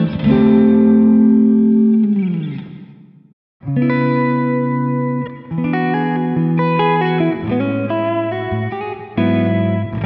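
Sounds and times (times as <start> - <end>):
electric guitar notes: 0.0 - 10.0.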